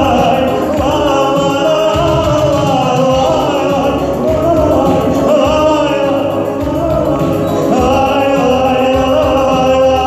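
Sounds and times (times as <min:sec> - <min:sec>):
instrumental accompaniment: 0:00.0 - 0:10.0
man singing into microphone: 0:00.0 - 0:10.0.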